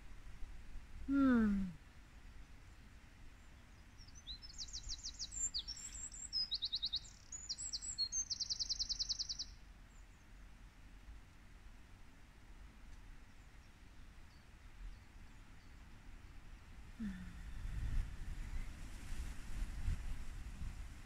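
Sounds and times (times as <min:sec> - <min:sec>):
songbird singing rapid trills: 0:03.4 - 0:10.4.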